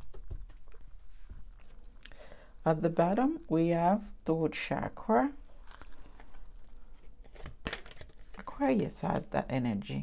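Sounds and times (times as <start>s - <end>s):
cards rustling and sliding: 5.8s - 8.5s.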